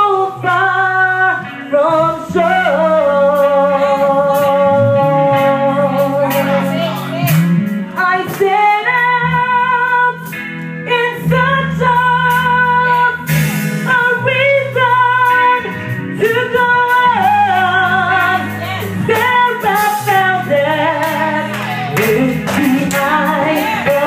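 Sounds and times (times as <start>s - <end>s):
instrumental accompaniment: 0.0s - 24.0s
woman singing into a microphone: 0.0s - 24.0s.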